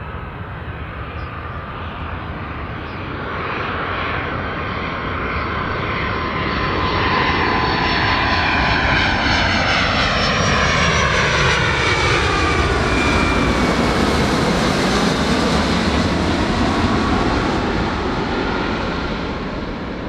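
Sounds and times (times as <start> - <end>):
jet engines on approach: 0.0 - 20.0.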